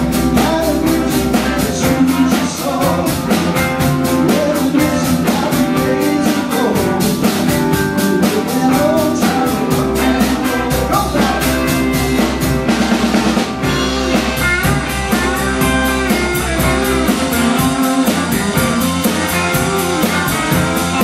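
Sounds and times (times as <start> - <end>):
deep bass line: 0.0 - 21.0
drum kit beat: 0.0 - 21.0
electric guitars: 0.0 - 21.0.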